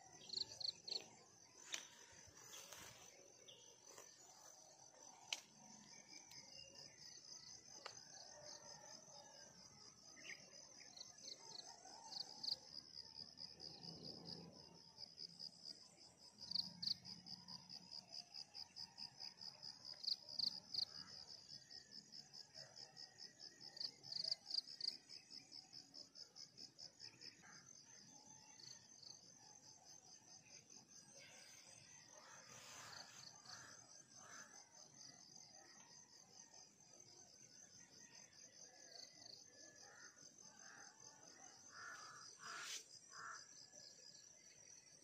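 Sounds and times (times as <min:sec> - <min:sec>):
crickets chirping: 0:00.0 - 0:45.0.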